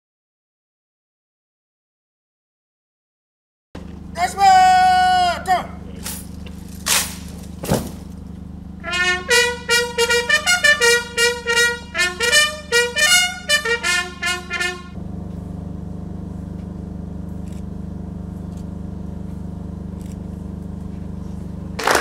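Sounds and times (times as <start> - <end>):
steady low hum: 3.8 - 22.0
shouted parade command: 4.2 - 5.8, 8.8 - 14.9
bugle salute call: 4.2 - 6.2, 8.8 - 15.0.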